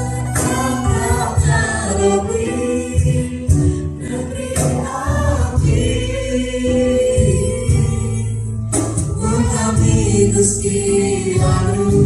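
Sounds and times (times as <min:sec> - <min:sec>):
voices singing a worship song: 0:00.0 - 0:12.0
worship band playing: 0:00.0 - 0:12.0.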